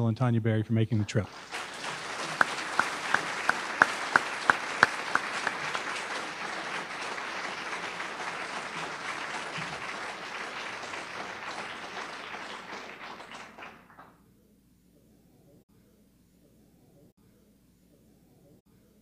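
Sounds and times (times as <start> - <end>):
audience applauding: 1.1 - 14.1
close loud clapping: 1.2 - 14.2.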